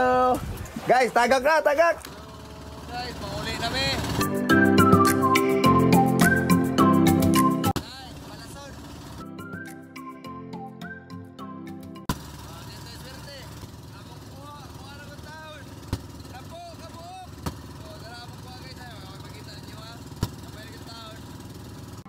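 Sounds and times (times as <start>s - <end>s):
boat engine running: 0.0s - 9.7s, 11.8s - 22.0s.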